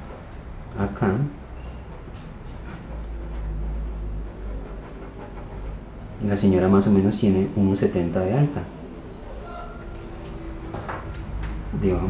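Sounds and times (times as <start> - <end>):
pencil scratching on paper: 1.8 - 6.5.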